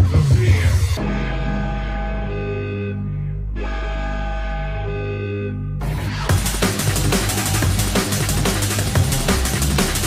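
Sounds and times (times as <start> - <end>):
deep steady bass: 0.0 - 10.0
sustained melodic chords: 1.0 - 9.2
drum beat: 6.3 - 10.0.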